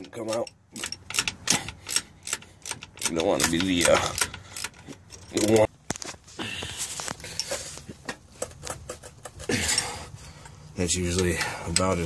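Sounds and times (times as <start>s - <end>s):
wrench clicking and tapping on metal: 0.0s - 5.7s, 9.7s - 12.0s.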